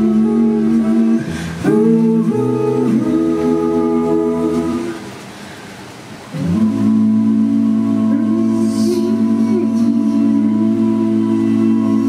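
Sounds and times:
a cappella group singing chords: 0:00.0 - 0:12.0.

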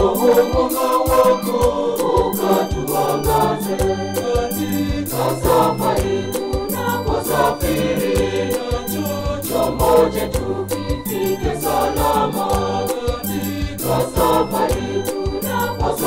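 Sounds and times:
choir singing a hymn: 0:00.0 - 0:16.0
steady beat: 0:00.0 - 0:16.0
stepping bass line: 0:00.0 - 0:16.0.

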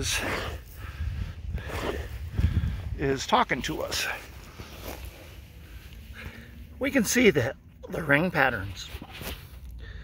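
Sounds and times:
low microphone rumble: 0:00.0 - 0:06.8
footsteps on wood-chip mulch: 0:03.4 - 0:06.0.

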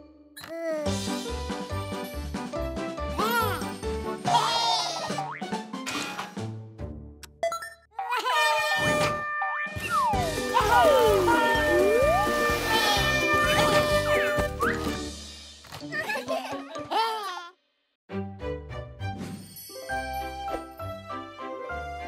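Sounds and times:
cartoon music: 0:08.0 - 0:15.0.

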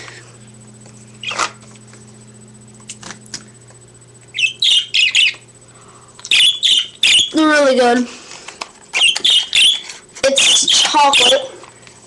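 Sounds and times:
pet bird shrill chirps: 0:04.3 - 0:05.4, 0:06.3 - 0:07.4, 0:09.0 - 0:09.8.

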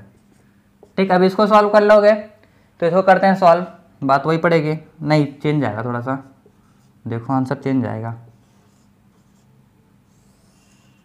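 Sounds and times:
marker squeaking on whiteboard: 0:10.1 - 0:11.0.

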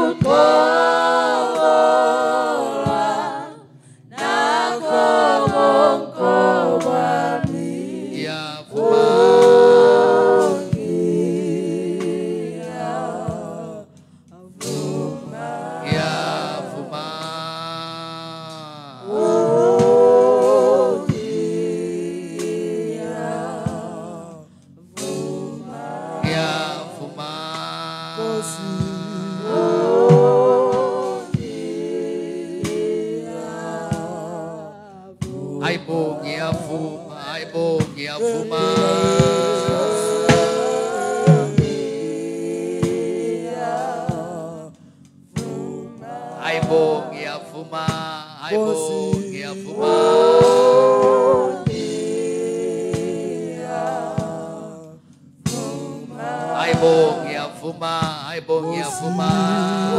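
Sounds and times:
unaccompanied worship singing: 0:00.0 - 0:59.9.

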